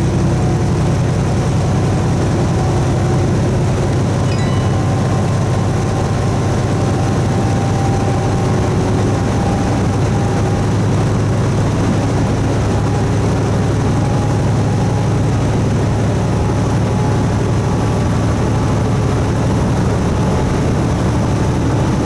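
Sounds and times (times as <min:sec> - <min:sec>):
road noise: 0:00.0 - 0:22.0
truck diesel engine drone: 0:00.0 - 0:22.0.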